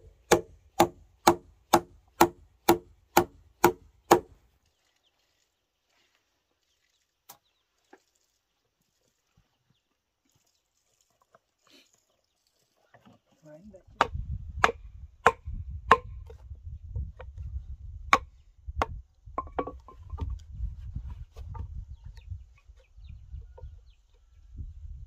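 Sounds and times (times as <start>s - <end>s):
mallet striking chisel: 0.3s - 4.3s, 14.0s - 16.1s.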